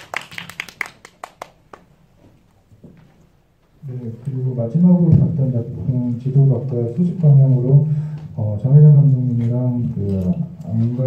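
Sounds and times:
small group hand clapping: 0.0s - 2.1s.

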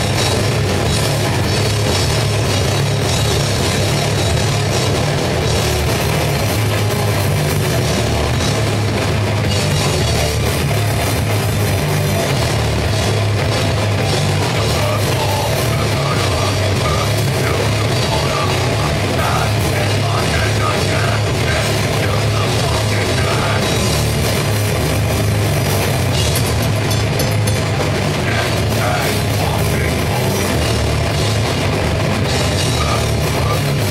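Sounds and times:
bass guitar: 0.0s - 33.9s
distorted guitar: 0.0s - 33.9s
drum kit: 0.0s - 33.9s.

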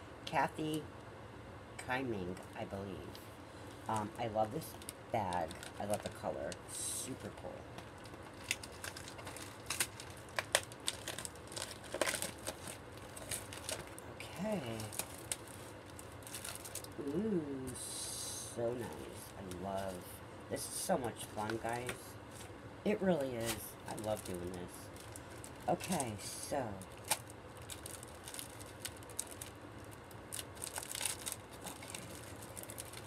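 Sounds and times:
plastic mailer crinkling: 3.6s - 17.2s, 21.1s - 33.0s.

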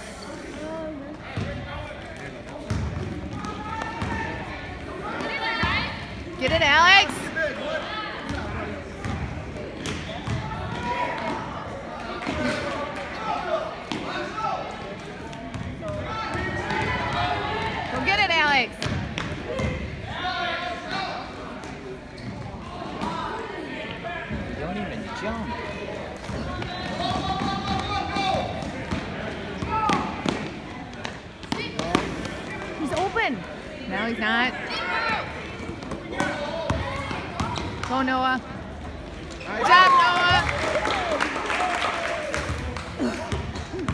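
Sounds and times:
spectators' voices and calls: 0.0s - 43.9s
sneaker squeak: 22.1s - 22.6s.

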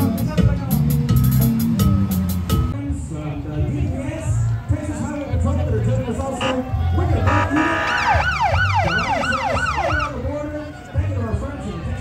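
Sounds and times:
music with heavy bass: 0.0s - 12.0s
voices: 2.7s - 12.0s
steady horn tone: 6.4s - 10.0s
siren yelping: 7.2s - 10.2s.

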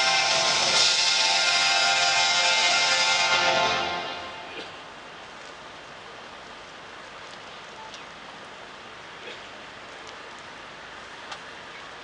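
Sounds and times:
background crowd hiss: 0.0s - 12.0s
faint clicks: 9.3s - 11.9s.

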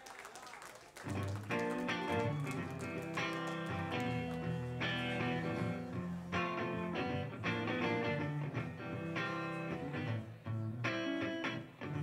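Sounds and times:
electric guitar: 1.0s - 12.0s
bass guitar: 1.1s - 12.0s.

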